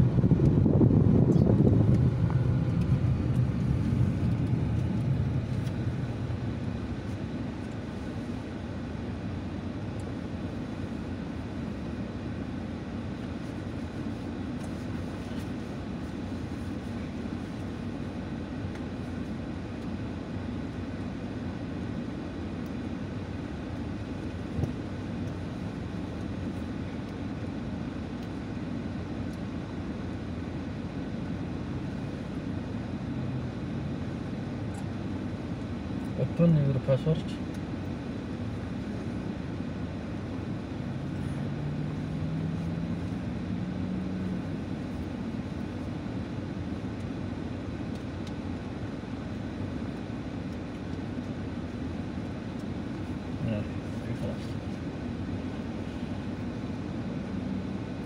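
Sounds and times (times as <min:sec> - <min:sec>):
car engine and tyres hum: 0:00.0 - 0:58.0.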